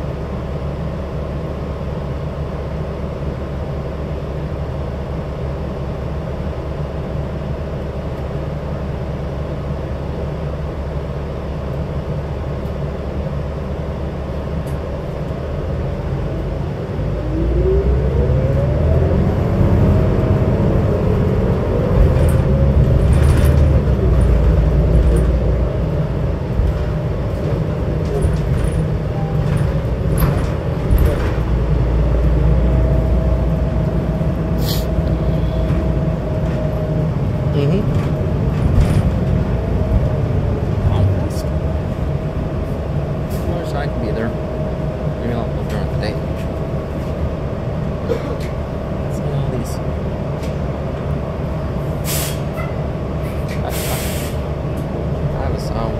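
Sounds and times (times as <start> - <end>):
bus body rattles and clicks: 0.0 - 16.8, 18.6 - 55.9
bus engine rumble and whine: 0.0 - 55.9.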